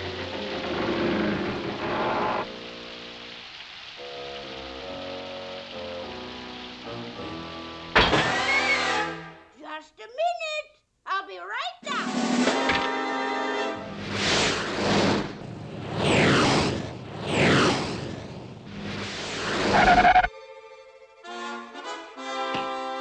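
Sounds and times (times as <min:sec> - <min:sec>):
noisy sound effects: 0:13.9 - 0:20.3.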